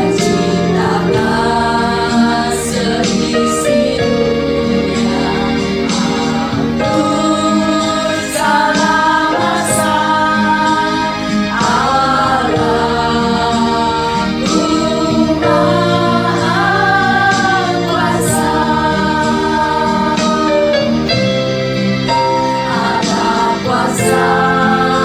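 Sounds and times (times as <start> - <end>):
women singing worship song: 0.0 - 21.0, 22.3 - 25.0.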